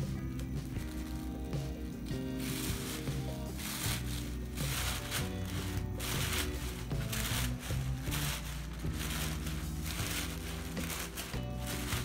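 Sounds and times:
background music with held notes: 0.0 - 12.0
tissue paper rustling: 0.0 - 12.0.

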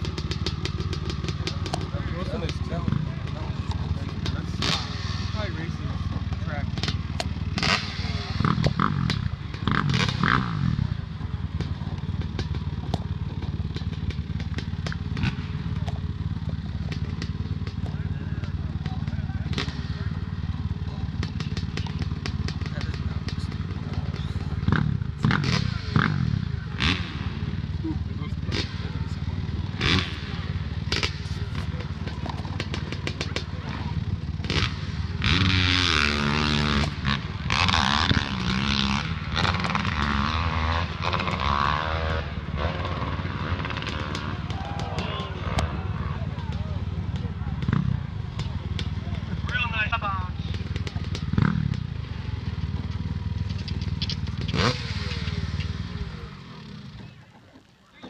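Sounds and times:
crowd talking: 0.0 - 58.0
dirt bike engines revving: 0.0 - 58.0.

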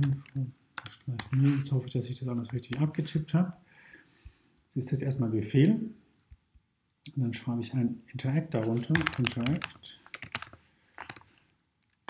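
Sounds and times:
keyboard typing: 0.0 - 1.7, 8.6 - 11.3.

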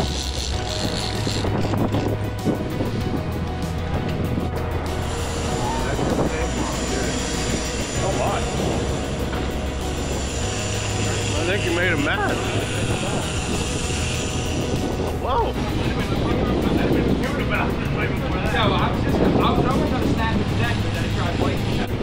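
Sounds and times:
boat engines droning: 0.0 - 22.0.

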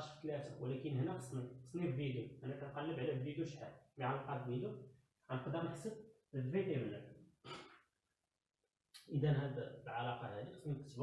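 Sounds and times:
man speaking: 0.0 - 7.1, 9.0 - 11.0.

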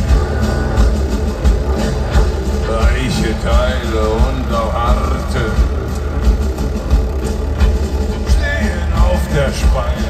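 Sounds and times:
industrial metal band playing: 0.0 - 10.0
deep male voice singing: 2.6 - 6.0, 8.2 - 10.0.

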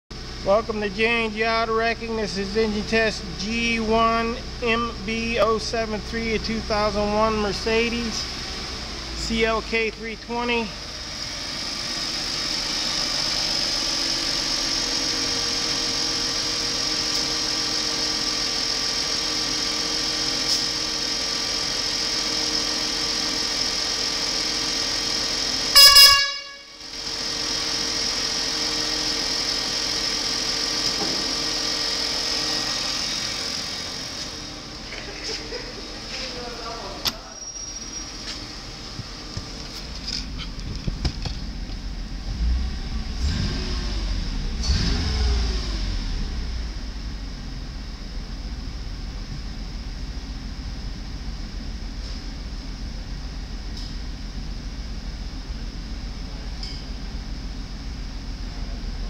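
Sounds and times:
car engine idling: 0.1 - 59.0
car horn toot: 25.7 - 26.9.

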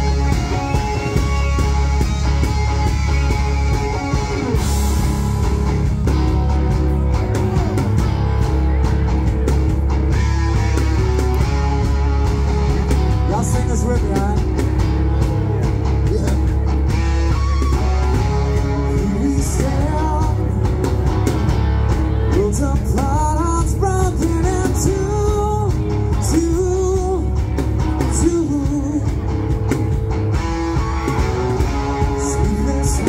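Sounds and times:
bending lead guitar melody: 0.0 - 33.0
rock band playing: 0.0 - 33.0.

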